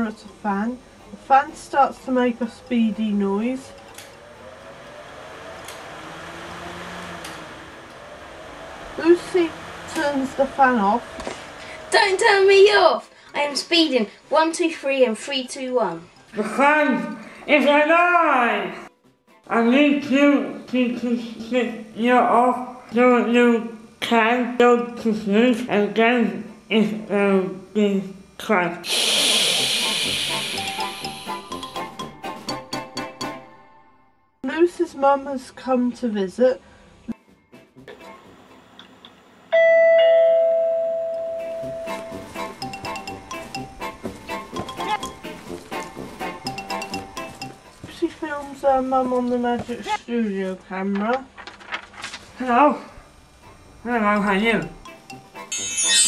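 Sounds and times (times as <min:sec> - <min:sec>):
gentle music with chiming notes: 0:00.0 - 0:05.7, 0:30.6 - 0:34.1, 0:39.6 - 0:47.9, 0:54.5 - 0:56.0
electric fan whirring: 0:00.0 - 0:18.7, 0:19.5 - 0:33.6, 0:41.2 - 0:55.7
long hiss: 0:28.8 - 0:31.6.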